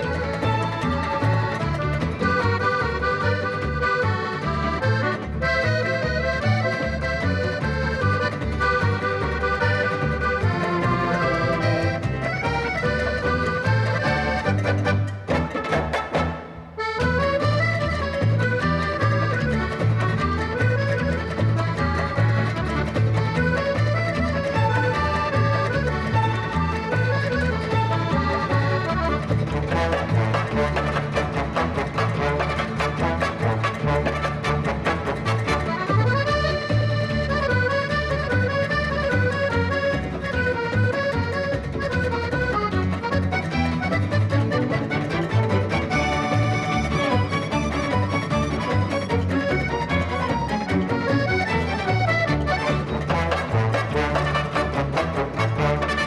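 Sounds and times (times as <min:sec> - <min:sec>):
accordion playing samba tune: 0:00.0 - 0:56.0
dance orchestra rhythm section: 0:10.6 - 0:17.1, 0:28.4 - 0:36.9, 0:44.0 - 0:56.0.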